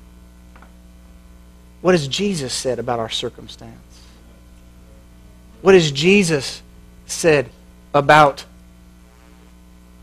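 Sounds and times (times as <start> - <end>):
electrical mains hum: 0.0 - 10.0
man's voice: 5.6 - 8.5.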